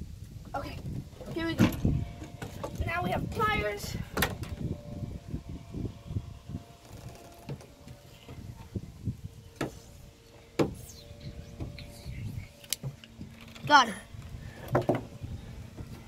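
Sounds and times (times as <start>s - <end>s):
wind rumble on microphone: 0.0s - 16.0s.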